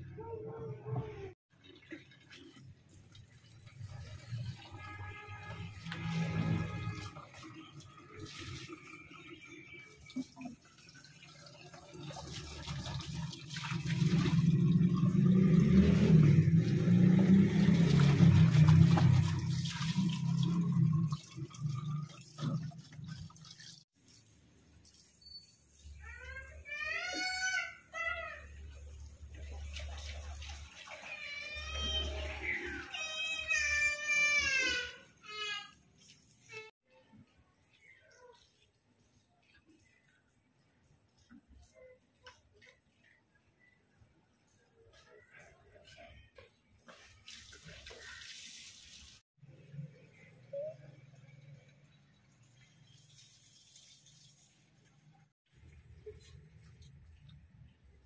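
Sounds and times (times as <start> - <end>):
tap water running into bottles: 1.6 - 36.7.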